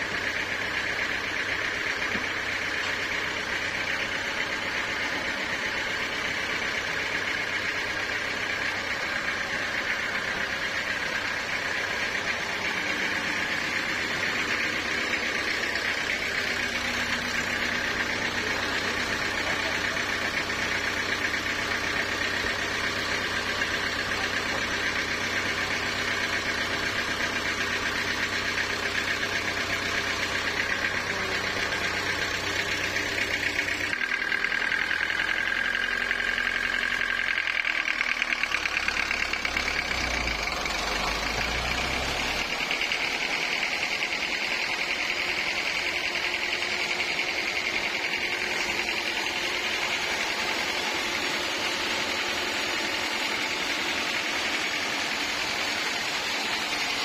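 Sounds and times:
diesel engine running: 0.0s - 57.0s.

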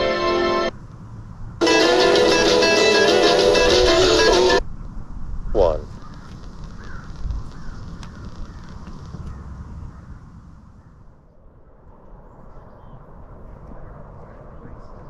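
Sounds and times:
guitar music from radio: 0.0s - 0.7s, 1.6s - 4.6s
faint bird chirps: 12.3s - 13.1s.

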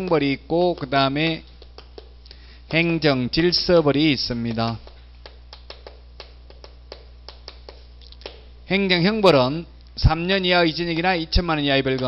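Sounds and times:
low electrical hum: 0.0s - 12.0s
chalk tapping on chalkboard: 1.6s - 2.9s, 4.7s - 8.4s.

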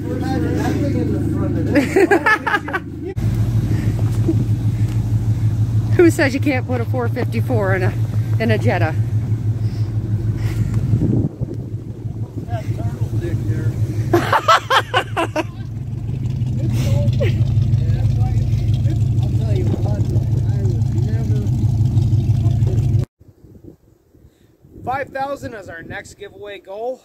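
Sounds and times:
voices and laughter: 0.0s - 5.5s, 12.4s - 15.8s, 16.5s - 20.9s
vehicle engine idling: 0.0s - 23.1s.

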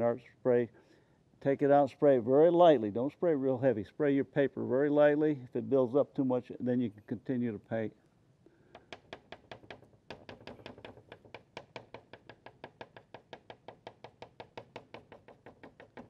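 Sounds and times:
pastel tapping on paper: 8.8s - 16.0s.

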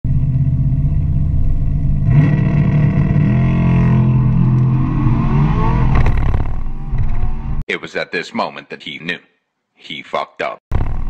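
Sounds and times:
car engine revving: 0.1s - 7.6s.

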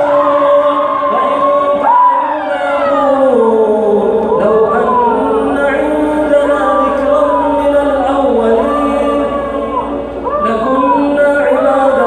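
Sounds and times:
people crying out: 0.0s - 12.0s.

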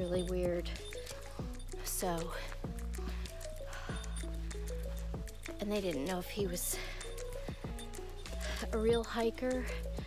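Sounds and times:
background music with soft beat: 0.0s - 10.0s.

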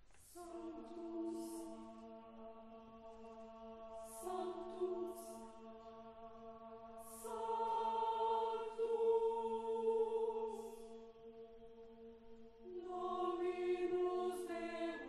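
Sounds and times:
choir singing chords: 0.0s - 15.0s.

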